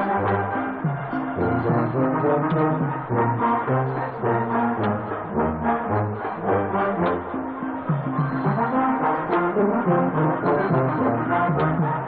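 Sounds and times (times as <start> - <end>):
low brass long notes: 0.0 - 12.0
wind band playing: 0.0 - 12.0.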